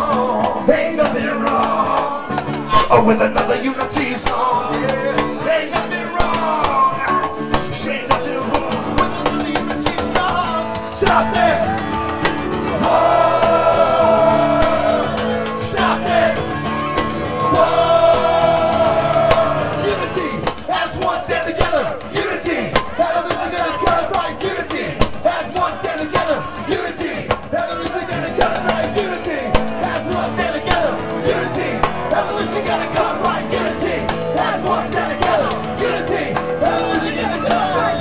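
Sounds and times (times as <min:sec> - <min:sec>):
acoustic guitars strumming: 0:00.0 - 0:38.0
crowd singing: 0:00.0 - 0:38.0
voices singing along: 0:00.0 - 0:38.0.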